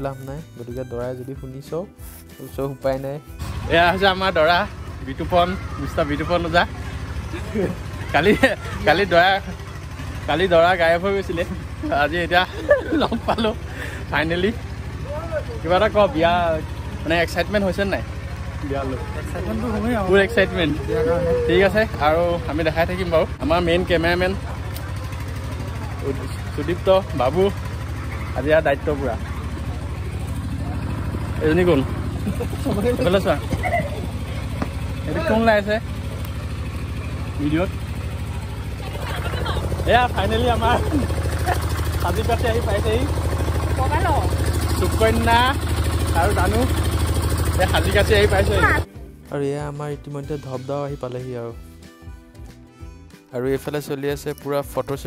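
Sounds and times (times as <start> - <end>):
low engine hum pulsing: 3.3 - 49.2
people's voices: 18.6 - 46.8.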